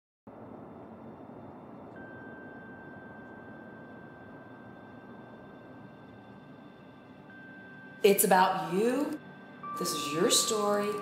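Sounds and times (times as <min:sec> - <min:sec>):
faint ambient music: 0:00.3 - 0:11.0.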